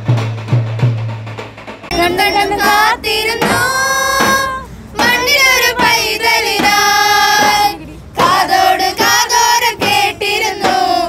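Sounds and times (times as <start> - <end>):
women and girls singing a carol: 1.9 - 11.0.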